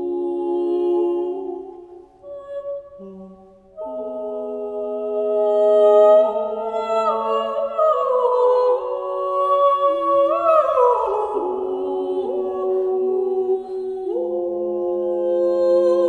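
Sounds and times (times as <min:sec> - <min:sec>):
small choir singing polyphony: 0:00.0 - 0:02.1, 0:03.0 - 0:16.0.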